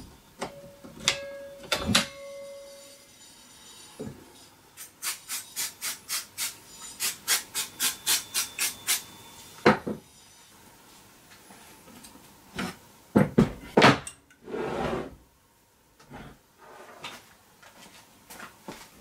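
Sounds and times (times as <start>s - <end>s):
aerosol spray hissing bursts: 4.8s - 9.0s.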